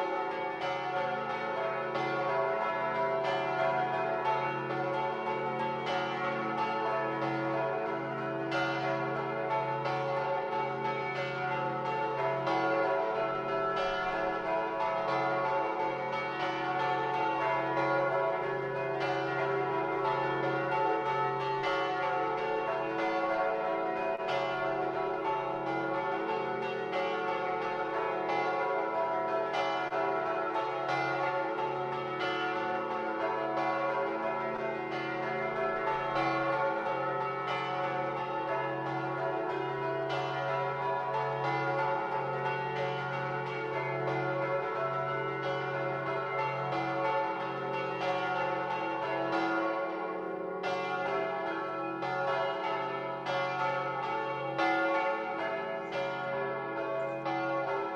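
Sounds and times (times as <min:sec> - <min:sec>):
church bells pealing: 0:00.0 - 0:57.9.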